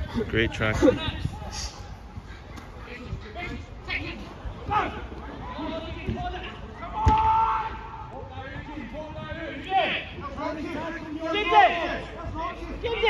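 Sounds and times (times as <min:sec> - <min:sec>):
players shouting: 0:03.9 - 0:13.0
football kicked with a thud: 0:07.0 - 0:07.4.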